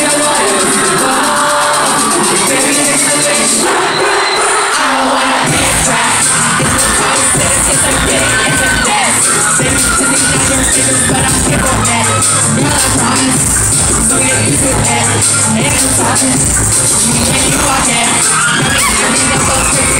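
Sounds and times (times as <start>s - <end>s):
crowd cheering: 0.0s - 19.9s
heavy bass beat: 0.0s - 19.9s
pop song over sound system: 0.0s - 19.9s.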